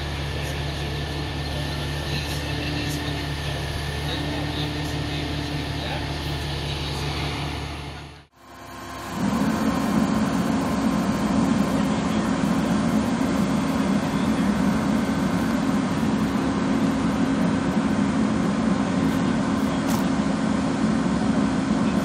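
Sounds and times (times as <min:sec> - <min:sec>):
truck engine and hydraulics humming: 0:00.0 - 0:22.0.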